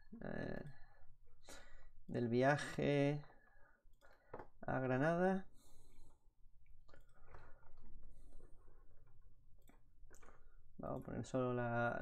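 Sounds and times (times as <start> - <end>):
computer mouse clicks: 5.9 - 11.3.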